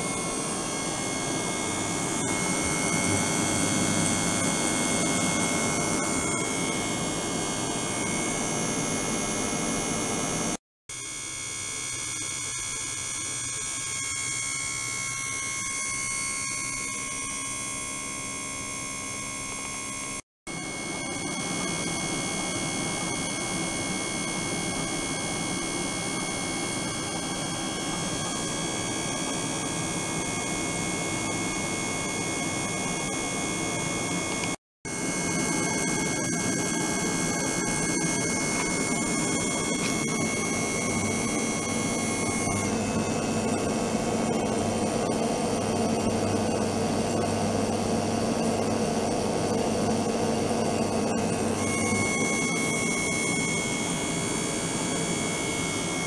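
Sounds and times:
steady high tones: 0.0s - 10.4s, 34.1s - 47.7s, 50.1s - 56.0s
machine hum: 0.0s - 10.6s, 19.6s - 56.0s.

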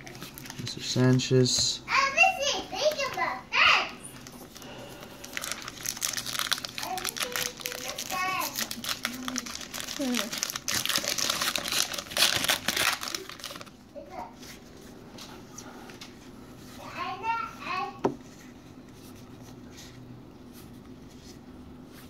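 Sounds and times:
wrapper crinkling: 0.0s - 1.3s, 4.1s - 13.9s.

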